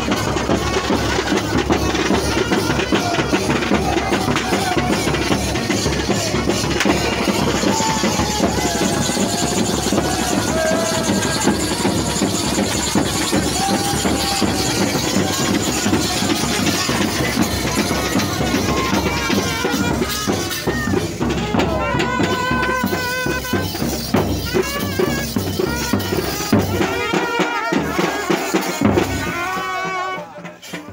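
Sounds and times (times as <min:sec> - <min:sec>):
bass drums beating: 0:00.0 - 0:29.8
crowd shouting and cheering: 0:00.0 - 0:30.9
marching band playing: 0:00.0 - 0:30.9.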